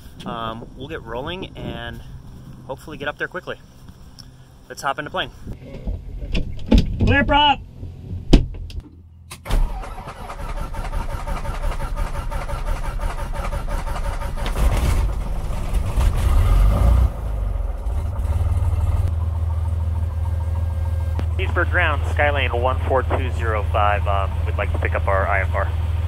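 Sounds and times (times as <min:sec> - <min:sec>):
aircraft engine starting and idling: 0:09.3 - 0:26.0.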